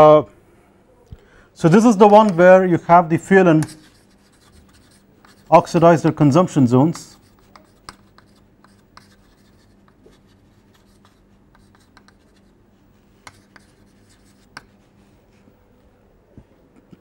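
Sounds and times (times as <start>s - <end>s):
faint electrical hum: 0.0s - 17.0s
sharp chalk clicks: 1.7s - 2.4s, 3.6s - 6.2s, 6.8s - 12.4s, 13.2s - 14.7s
chalk scratching on blackboard: 3.5s - 6.2s, 6.8s - 15.0s.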